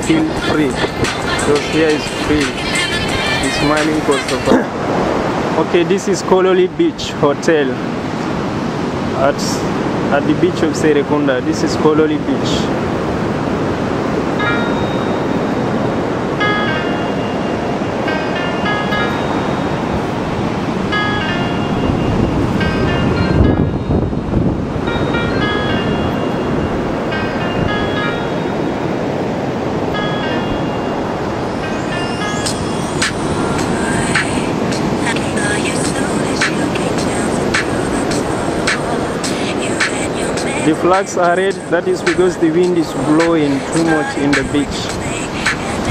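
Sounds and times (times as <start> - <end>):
wind on microphone: 0.0 - 7.2, 11.4 - 45.9
music with short high notes: 29.9 - 35.0.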